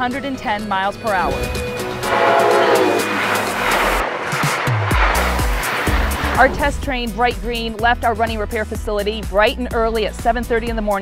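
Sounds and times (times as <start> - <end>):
background music with bass: 0.0 - 11.0
train rushing past: 0.2 - 8.4.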